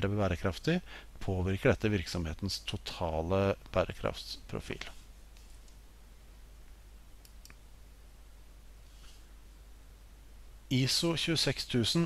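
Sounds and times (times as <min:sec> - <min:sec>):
faint room hiss: 0:00.0 - 0:12.0
computer mouse clicks: 0:07.2 - 0:07.6.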